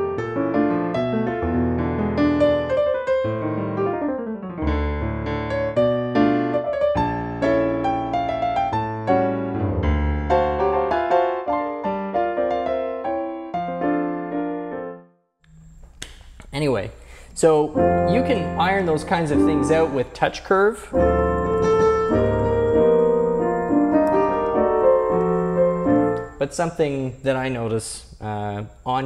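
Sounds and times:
jazz piano piece: 0:00.0 - 0:15.2, 0:17.7 - 0:27.3.

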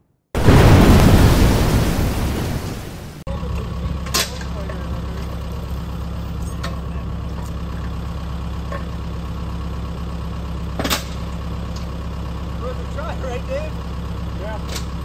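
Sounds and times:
tractor engine idling: 0:03.0 - 0:15.0.

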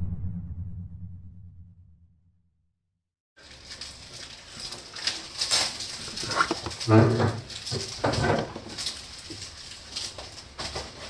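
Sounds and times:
box rustling and scraping on cardboard: 0:03.8 - 0:09.6.

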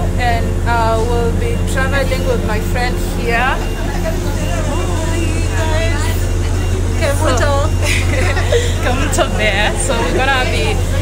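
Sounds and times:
train carriage rumble: 0:00.0 - 0:11.0.

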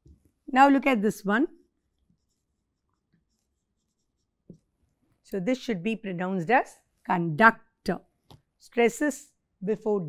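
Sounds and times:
marker pen scratching on whiteboard: 0:01.6 - 0:05.2.

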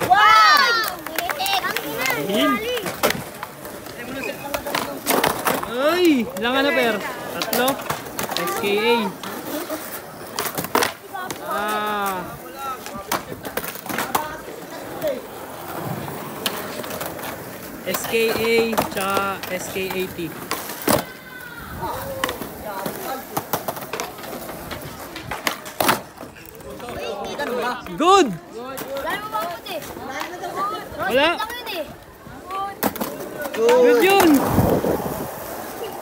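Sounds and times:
skateboard clacking on concrete: 0:00.0 - 0:36.0.

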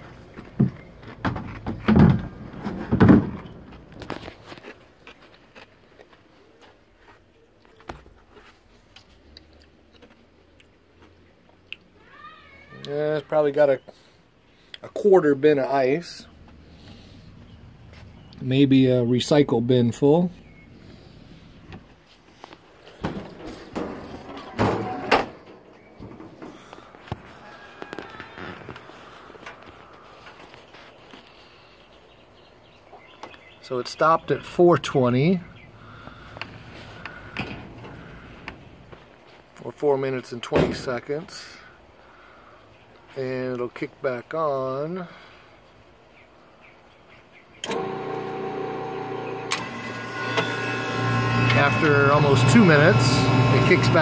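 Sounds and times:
knocks and clatter on metal cabinet: 0:00.6 - 0:03.6, 0:23.0 - 0:26.4
ice machine humming: 0:47.6 - 0:54.0.

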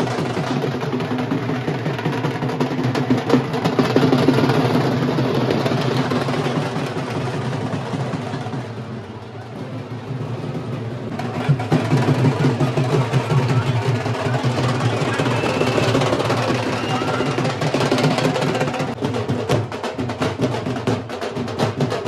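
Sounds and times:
dhol drumming: 0:00.0 - 0:22.0.

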